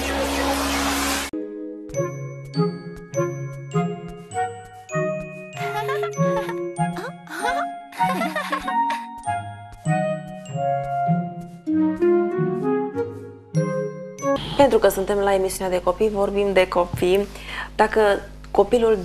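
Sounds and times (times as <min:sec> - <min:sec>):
chiming jingle music: 0:01.4 - 0:11.7, 0:13.6 - 0:14.4.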